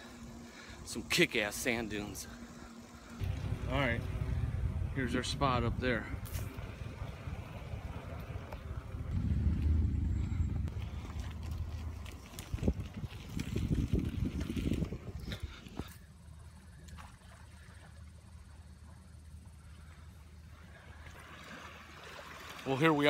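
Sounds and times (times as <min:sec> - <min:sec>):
wind buffeting microphone: 0:03.2 - 0:15.9.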